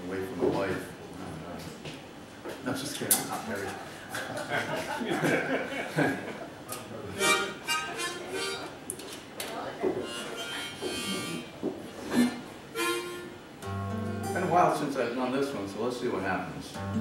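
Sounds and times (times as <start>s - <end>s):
harmonica bursts of notes: 7.1s - 8.8s, 10.0s - 14.8s.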